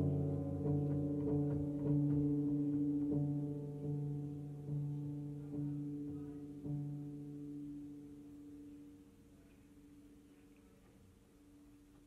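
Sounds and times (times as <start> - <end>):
piano chord ringing: 0.0 - 9.5.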